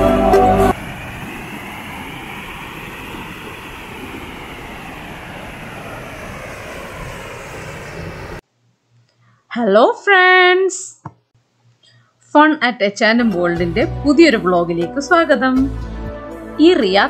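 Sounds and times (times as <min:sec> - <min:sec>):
water rushing over a weir: 0:00.7 - 0:07.7.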